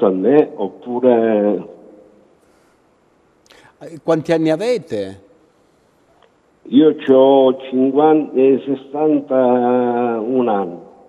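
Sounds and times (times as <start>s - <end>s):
faint background hiss: 0.0s - 11.0s
short breathy sound: 3.5s - 3.8s
man's voice: 3.6s - 5.2s.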